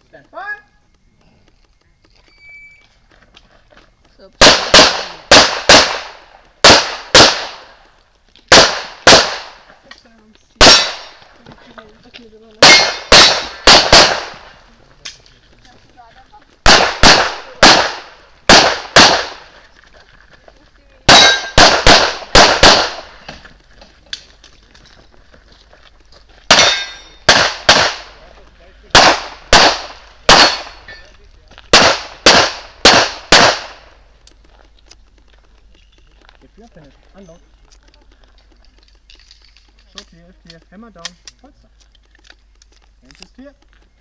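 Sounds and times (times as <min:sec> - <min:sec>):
pistol shots: 0:04.4 - 0:07.8, 0:08.5 - 0:09.7, 0:10.6 - 0:11.3, 0:12.6 - 0:14.6, 0:16.6 - 0:19.5, 0:21.1 - 0:23.3, 0:26.5 - 0:28.2, 0:28.9 - 0:30.9, 0:31.7 - 0:34.0.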